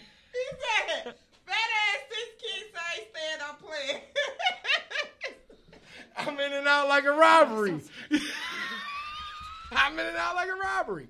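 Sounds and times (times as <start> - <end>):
person laughing: 8.0 - 9.9.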